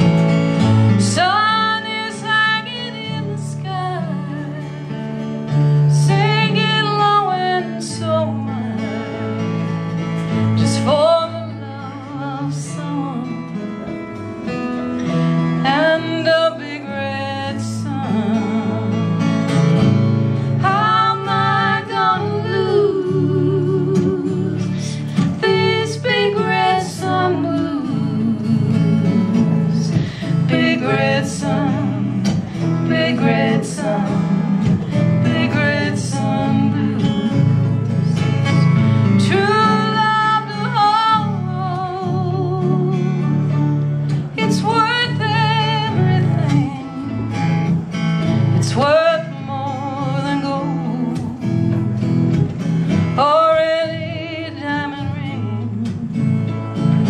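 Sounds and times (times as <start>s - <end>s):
acoustic guitar strummed and picked: 0.0s - 57.0s
women singing: 0.9s - 5.0s, 5.8s - 9.4s, 10.6s - 13.6s, 15.6s - 19.3s, 20.4s - 43.5s, 44.1s - 47.5s, 48.6s - 51.8s, 53.2s - 57.0s.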